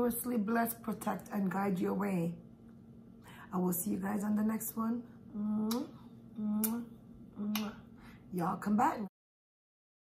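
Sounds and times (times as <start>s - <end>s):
woman blowing kisses: 6.5s - 7.8s.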